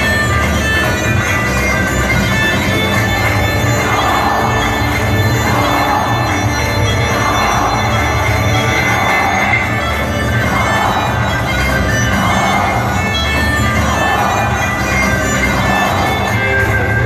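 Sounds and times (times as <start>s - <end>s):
folk dance music: 0.0s - 17.0s.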